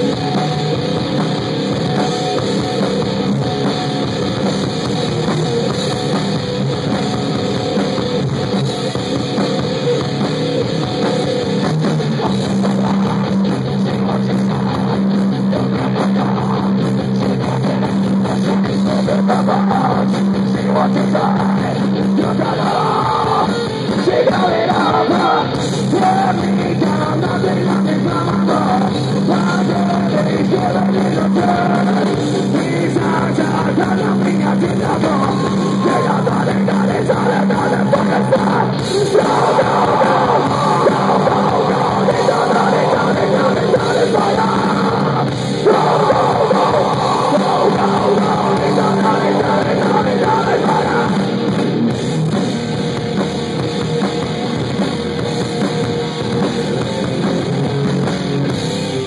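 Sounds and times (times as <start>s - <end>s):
bass guitar: 0.0s - 59.0s
drum kit: 0.0s - 59.0s
electric guitar: 0.0s - 59.0s
shouted vocals: 19.0s - 32.0s, 32.8s - 51.2s.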